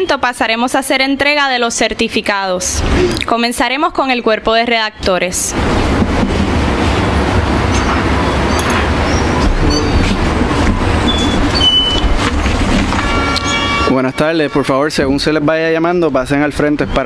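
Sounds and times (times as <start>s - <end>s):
loud steady rumbling: 2.6s - 16.8s
steady tone: 5.4s - 16.0s.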